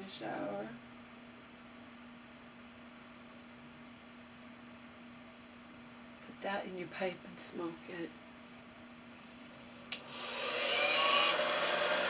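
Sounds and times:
hair dryer blowing: 9.9s - 12.0s.

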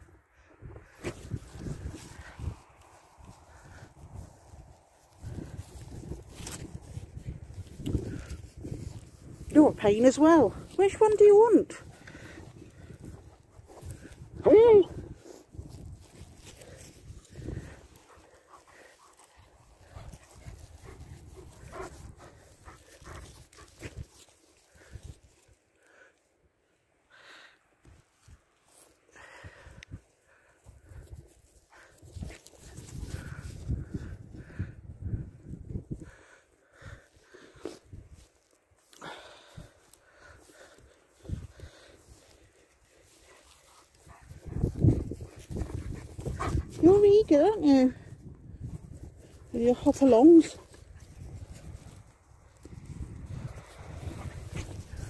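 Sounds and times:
dogs panting: 0.8s - 25.5s, 39.4s - 55.0s.

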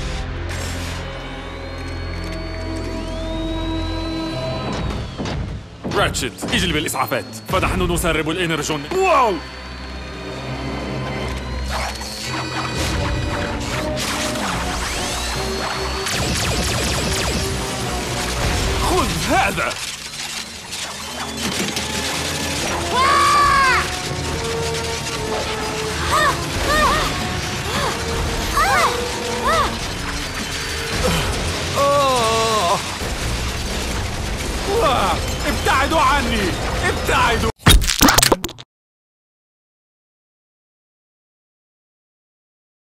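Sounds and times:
low tense background music: 0.0s - 37.5s
robotic creatures clicking and chittering: 11.2s - 38.6s
mechanical clicking and clattering: 18.5s - 23.0s, 23.8s - 31.8s.

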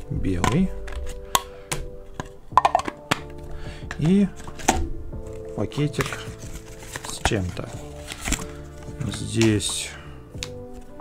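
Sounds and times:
plastic case clicking: 0.4s - 9.8s, 10.4s - 11.0s
cardboard box handled: 3.9s - 9.6s.

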